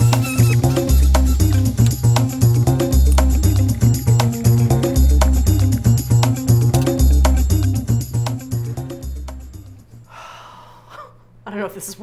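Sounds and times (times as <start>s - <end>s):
woman breathing out in a sigh: 10.1s - 11.0s.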